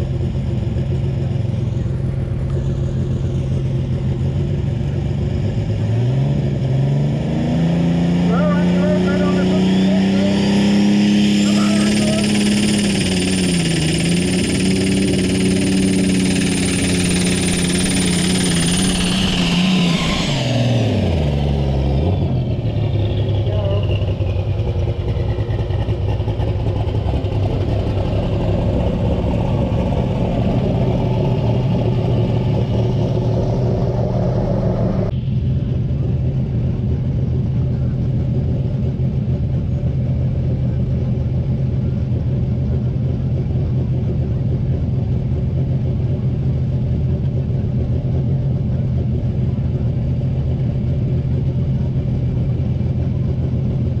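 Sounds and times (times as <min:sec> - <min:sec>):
high turbo whine: 0:00.0 - 0:54.0
tractor engine at full revs: 0:00.0 - 0:54.0.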